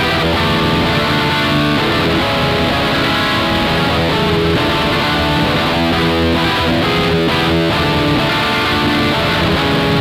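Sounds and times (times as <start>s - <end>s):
bass guitar: 0.0s - 10.0s
distorted electric guitar chords: 0.0s - 10.0s.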